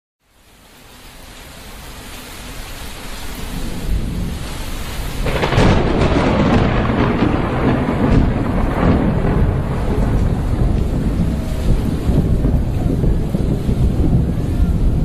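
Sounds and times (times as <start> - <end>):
rain: 0.2 - 15.0
rumbling thunder: 3.4 - 15.0.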